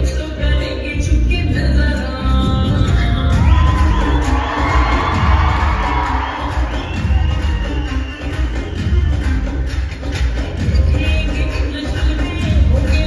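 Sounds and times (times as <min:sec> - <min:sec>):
dance song over sound system: 0:00.0 - 0:13.0
audience cheering and whooping: 0:03.3 - 0:10.0.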